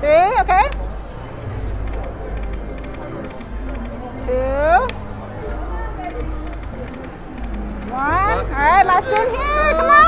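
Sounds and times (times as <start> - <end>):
low rumble of casino floor: 0.0 - 10.0
slot machine clicks: 1.8 - 5.0.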